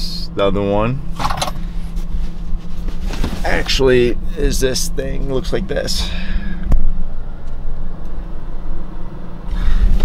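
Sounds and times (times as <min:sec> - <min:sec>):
car engine hum inside cabin: 0:00.0 - 0:10.0
rustling and fumbling: 0:01.2 - 0:03.8.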